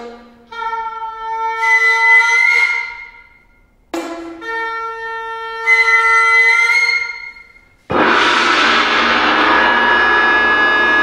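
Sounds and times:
bamboo flute high held note: 0.0 - 11.0
ensemble sustained low note: 7.9 - 11.0.

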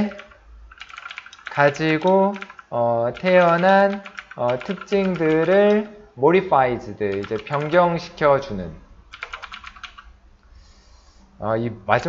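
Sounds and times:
computer keyboard typing: 0.0 - 5.9, 7.1 - 7.9, 9.1 - 10.1.

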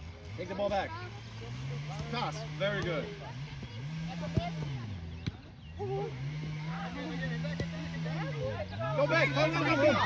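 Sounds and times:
football kick thuds: 4.3 - 4.6.

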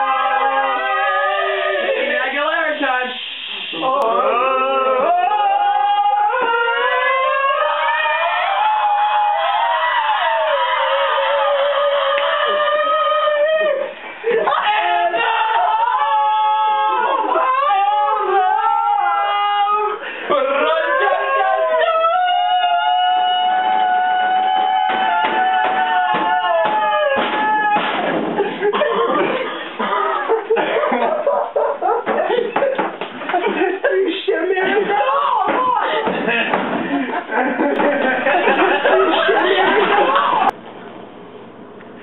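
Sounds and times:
man singing wordless notes: 2.2 - 7.4.

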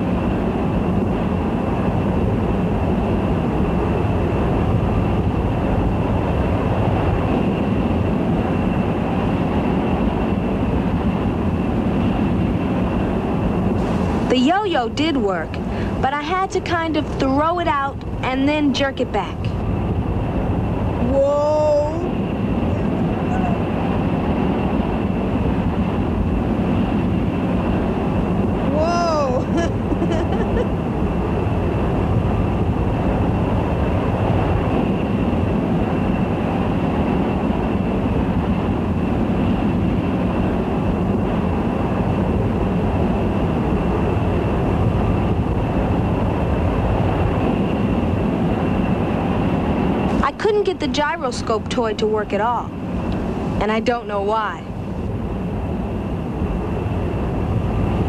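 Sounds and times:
high whine: 0.0 - 58.0
jet cabin engine noise: 0.0 - 58.0
person exclaiming: 21.0 - 22.1, 22.8 - 23.6, 28.7 - 30.6.

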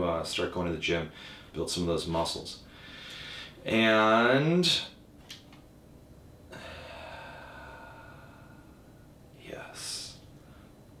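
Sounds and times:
man's breathy exhale: 6.5 - 8.9.

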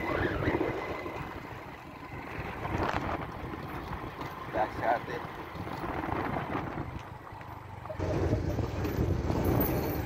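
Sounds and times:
wind buffeting microphone: 0.0 - 7.4.

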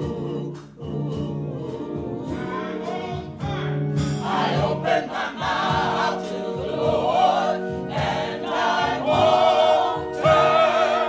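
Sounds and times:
choir singing gospel: 0.0 - 11.0.

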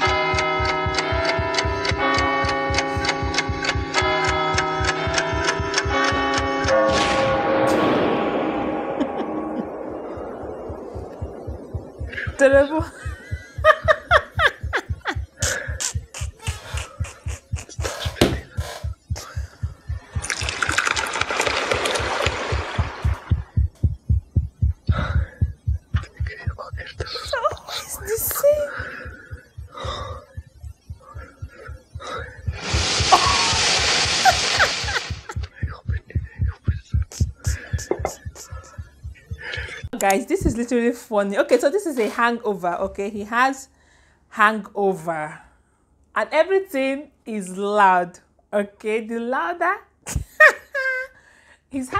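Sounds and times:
fast loud heartbeat: 0.0 - 7.4, 9.0 - 40.7.

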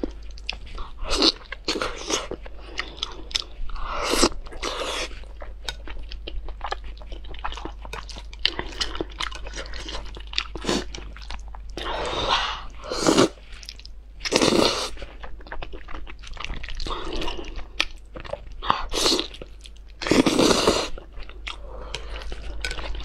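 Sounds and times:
wet chewing: 13.3 - 23.0.

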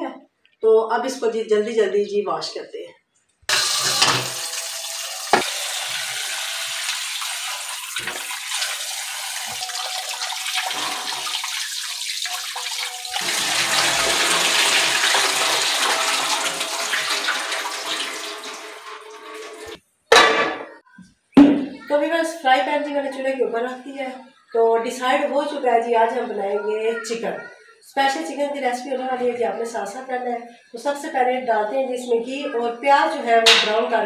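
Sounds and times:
tap water splashing into steel bowl: 3.5 - 4.6, 5.2 - 19.5
water poured into sink: 3.5 - 19.8.

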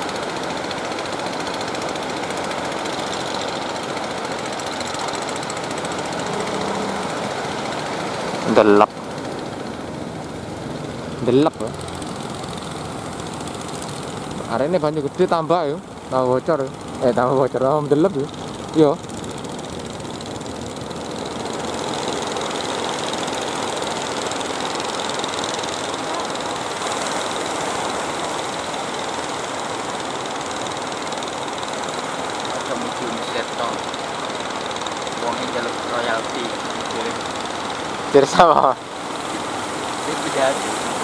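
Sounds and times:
waves breaking on shore: 0.0 - 41.0.

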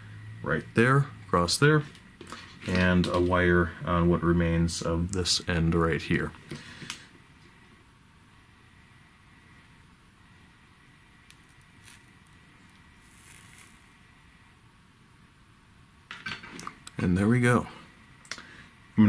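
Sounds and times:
faint high whine: 0.0 - 19.0.

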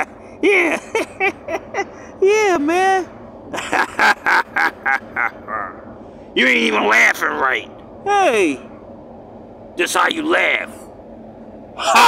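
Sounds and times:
person laughing: 0.0 - 2.5, 3.5 - 5.8, 11.8 - 12.0.

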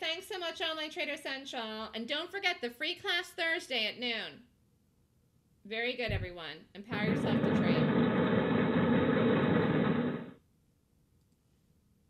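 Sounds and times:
steady rumbling noise: 6.1 - 10.4.

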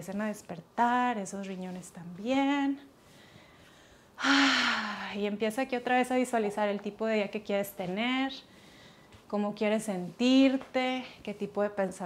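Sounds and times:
woman speaking: 0.0 - 2.9, 4.2 - 8.5, 9.3 - 12.0
woman's breathy exhale: 3.1 - 5.1.

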